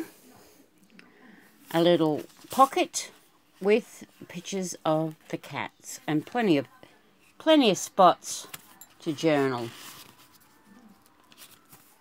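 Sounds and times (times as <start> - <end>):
paper pages being turned: 9.3 - 12.0.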